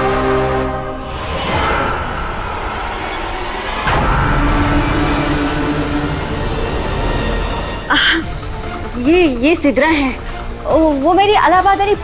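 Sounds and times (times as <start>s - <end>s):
held musical note: 0.0s - 8.9s
low rumbling drone: 0.0s - 9.4s.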